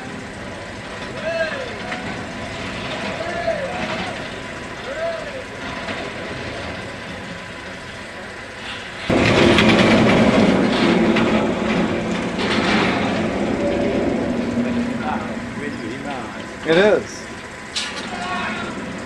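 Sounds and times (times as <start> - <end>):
roller coaster wheel rumble: 0.0 - 19.0.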